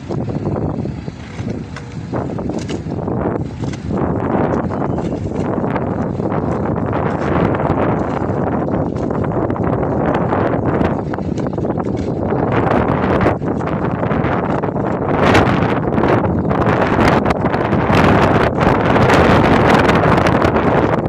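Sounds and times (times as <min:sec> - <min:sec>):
wind blowing across microphone: 0:00.0 - 0:21.0.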